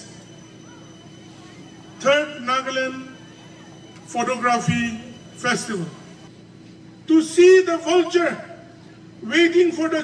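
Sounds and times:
faint constant hum: 0:00.0 - 0:10.0
open-air venue background noise: 0:00.0 - 0:10.0.

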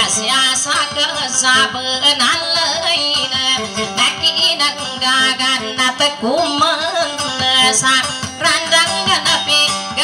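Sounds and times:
acoustic guitar: 0:00.0 - 0:10.0
woman singing: 0:00.0 - 0:10.0.

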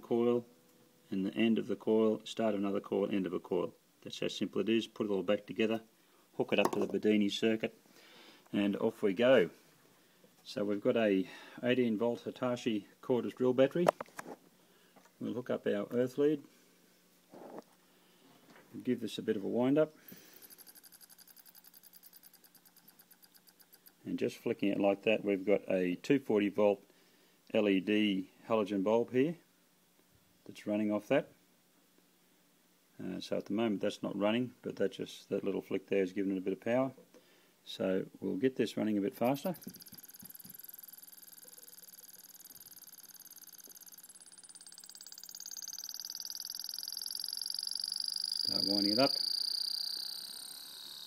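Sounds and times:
motor coasting with faint ticks: 0:20.4 - 0:24.0, 0:39.6 - 0:48.5.

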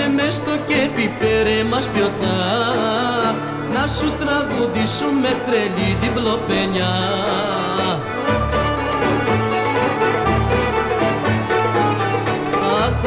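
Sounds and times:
plucked string band music: 0:00.0 - 0:13.0.

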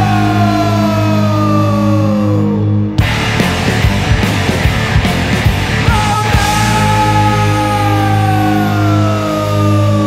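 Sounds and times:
rock band low drone: 0:00.0 - 0:10.0
high note sliding down: 0:06.2 - 0:08.7.

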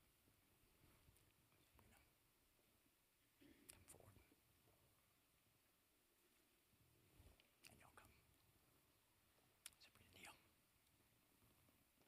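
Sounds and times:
faint whispered voices: 0:03.4 - 0:04.4, 0:07.6 - 0:08.3, 0:09.7 - 0:10.6.

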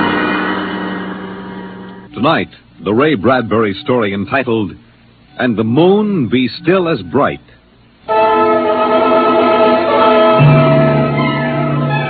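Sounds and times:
deep bass note: 0:00.0 - 0:02.4, 0:08.8 - 0:12.0
long held chords: 0:00.0 - 0:04.0, 0:05.1 - 0:12.0.

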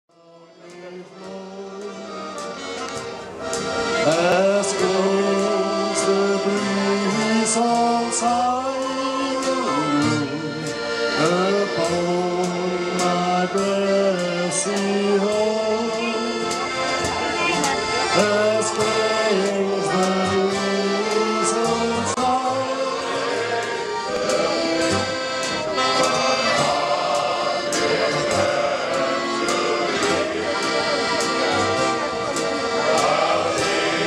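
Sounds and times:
male choir singing: 0:00.1 - 0:02.8, 0:03.8 - 0:17.1, 0:17.9 - 0:34.0
accordion chords: 0:00.1 - 0:34.0
drum kit beat: 0:10.3 - 0:34.0.

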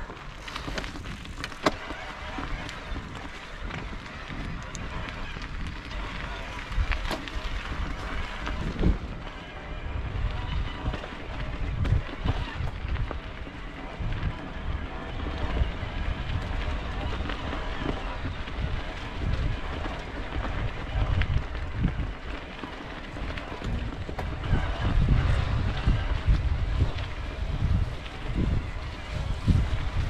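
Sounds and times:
bike rattles and knocks: 0:00.0 - 0:30.0
bike tyres rolling over stones: 0:00.0 - 0:30.0
wind on microphone: 0:00.0 - 0:30.0.

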